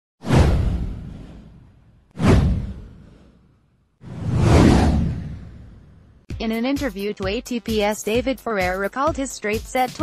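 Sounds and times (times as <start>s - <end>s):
whoosh: 0.2s - 6.3s
deep low boom: 0.3s - 3.3s, 4.1s - 6.2s.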